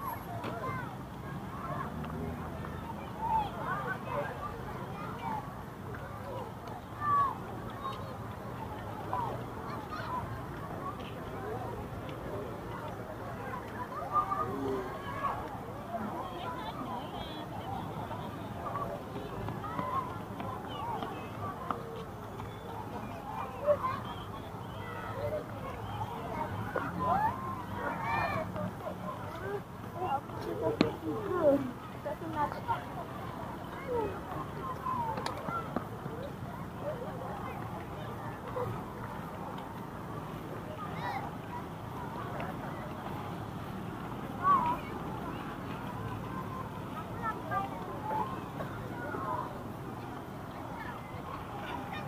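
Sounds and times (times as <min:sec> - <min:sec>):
crowd chatter: 0:00.0 - 0:52.0
distant people talking: 0:00.0 - 0:52.0
children calling out: 0:06.2 - 0:08.0, 0:13.6 - 0:16.9, 0:22.4 - 0:33.0.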